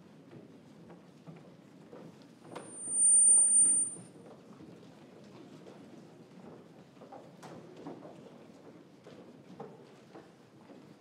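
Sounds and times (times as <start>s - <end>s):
loud high steady tone: 2.6s - 4.0s.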